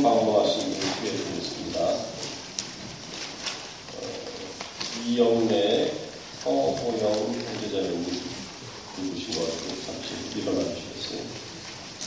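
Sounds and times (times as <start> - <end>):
person's indistinct voice: 3.8 - 11.6.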